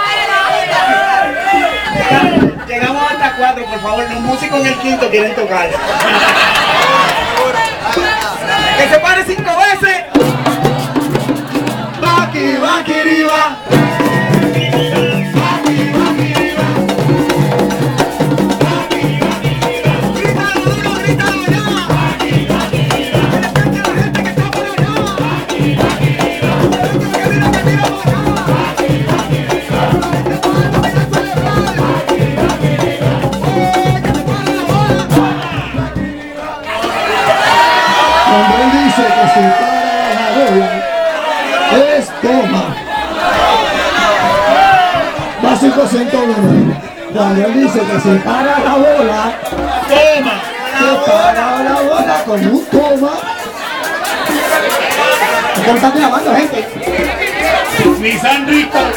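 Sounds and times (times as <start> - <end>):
group singing: 0.0 - 3.8, 5.7 - 9.3, 10.0 - 58.9
crowd singing along: 0.0 - 4.5, 5.6 - 58.9
frame drums beating: 0.9 - 3.2, 6.0 - 41.2, 42.9 - 58.9.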